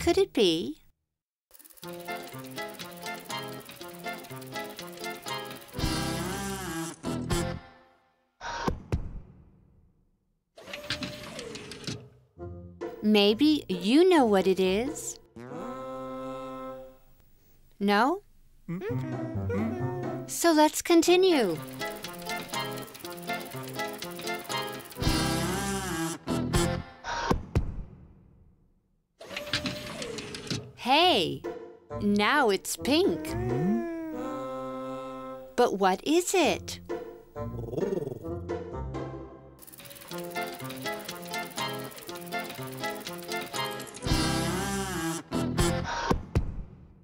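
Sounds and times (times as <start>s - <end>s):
mechanical clicks: 1.5s - 6.3s, 21.5s - 25.2s, 39.6s - 44.2s.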